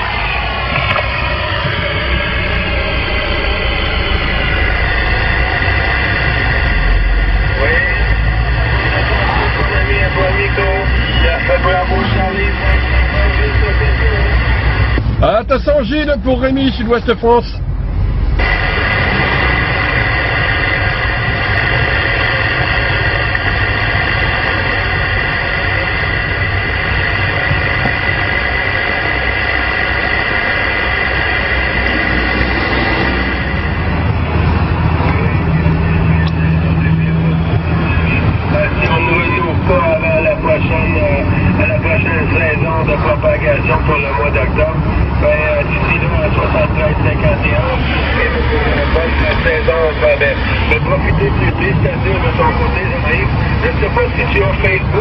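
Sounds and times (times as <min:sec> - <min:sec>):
radio static: 0:00.0 - 0:17.6, 0:18.3 - 0:55.0
steady whistling tones: 0:00.0 - 0:17.6, 0:18.4 - 0:55.0
radio band noise: 0:00.0 - 0:55.0
weak garbled radio voices: 0:00.0 - 0:55.0.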